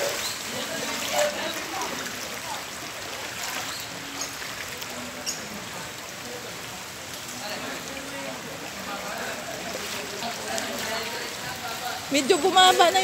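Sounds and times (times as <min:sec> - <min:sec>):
faint voices: 0:00.0 - 0:13.0
floodwater rushing along street: 0:00.0 - 0:13.0.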